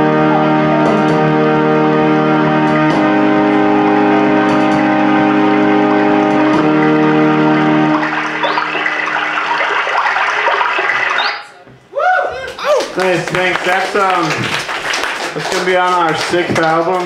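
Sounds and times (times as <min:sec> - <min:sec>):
electronic keyboard chords: 0:00.0 - 0:11.7
audience applause: 0:12.4 - 0:17.0.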